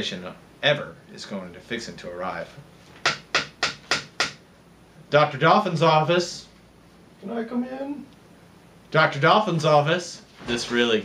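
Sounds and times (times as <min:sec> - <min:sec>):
knocks on a door: 0:03.0 - 0:04.4.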